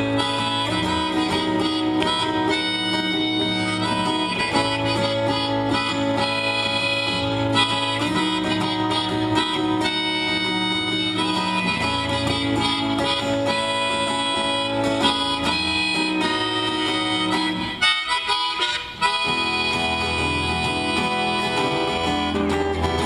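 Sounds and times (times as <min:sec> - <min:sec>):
acoustic guitar strummed: 0:00.0 - 0:23.0
harmonica long held notes: 0:00.0 - 0:23.0.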